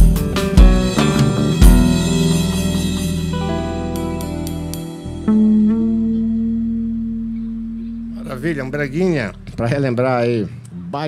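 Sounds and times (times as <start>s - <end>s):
electric guitar band: 0.0s - 9.8s
guitar note ringing out: 0.8s - 10.6s.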